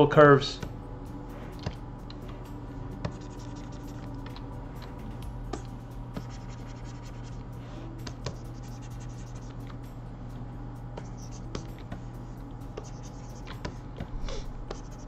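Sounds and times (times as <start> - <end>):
low hum: 0.0 - 15.0
stylus scratching on tablet: 1.3 - 9.8, 11.0 - 15.0.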